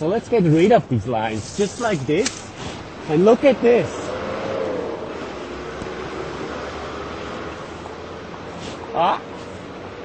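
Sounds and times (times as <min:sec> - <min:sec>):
city traffic hum: 0:00.0 - 0:10.0.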